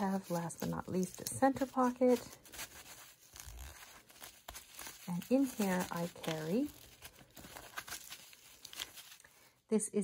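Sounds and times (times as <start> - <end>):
rustling in toiletry case: 0.0 - 9.3.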